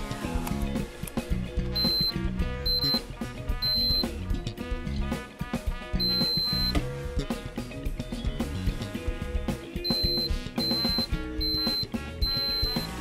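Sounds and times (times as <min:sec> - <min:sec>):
background music with beat: 0:00.0 - 0:13.0
multimeter beeps: 0:01.7 - 0:03.0, 0:03.6 - 0:04.1, 0:06.0 - 0:06.8, 0:09.9 - 0:13.0.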